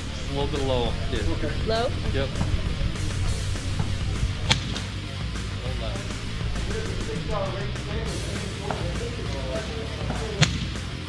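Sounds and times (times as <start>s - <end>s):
guitar background music: 0.0s - 11.0s.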